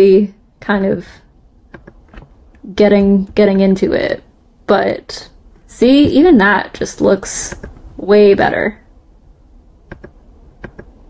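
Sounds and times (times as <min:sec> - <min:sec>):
light computer clicks: 0:01.7 - 0:02.6, 0:09.9 - 0:10.9.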